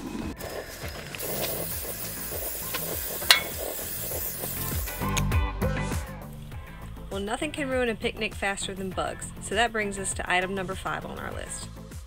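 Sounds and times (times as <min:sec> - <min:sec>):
background music: 0:00.0 - 0:12.0
meat frying on a griddle: 0:00.4 - 0:05.2.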